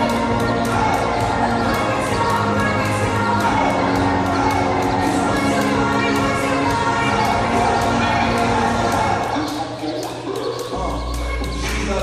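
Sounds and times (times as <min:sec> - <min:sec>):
jump rope slapping gym floor: 0:00.0 - 0:12.0.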